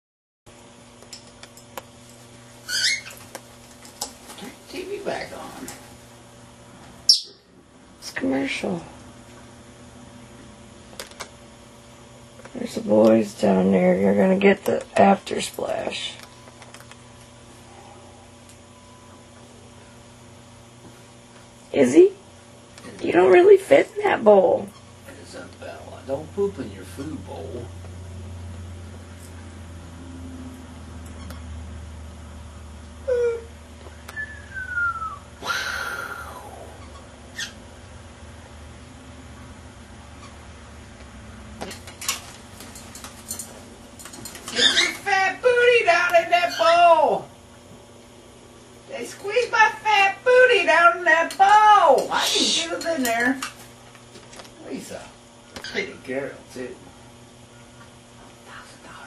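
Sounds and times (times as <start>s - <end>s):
room hum: 0.5s - 59.0s
parrot calls: 2.6s - 3.2s, 7.1s - 7.5s, 35.4s - 37.6s, 44.5s - 45.1s, 55.5s - 56.0s.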